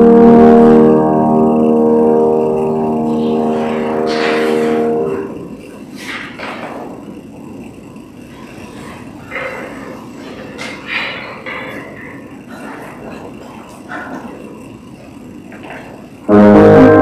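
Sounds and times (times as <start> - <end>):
piano chord ringing: 0.0 - 5.6, 16.3 - 17.0.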